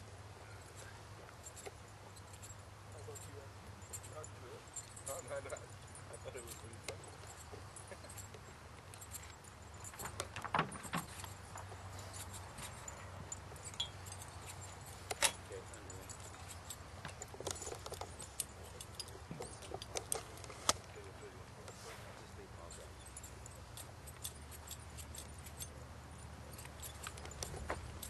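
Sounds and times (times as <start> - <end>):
metal harness jingling: 0.0 - 28.0.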